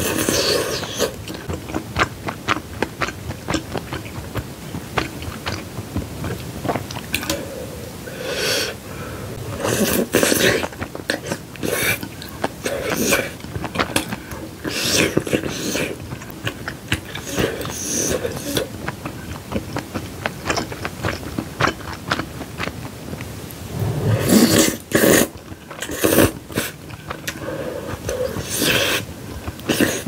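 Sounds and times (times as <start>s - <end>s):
slurping noodles: 0.0s - 2.1s, 6.7s - 22.0s, 23.7s - 30.0s
wet mouth clicks and chewing: 0.0s - 7.4s, 9.7s - 23.3s, 24.2s - 30.0s.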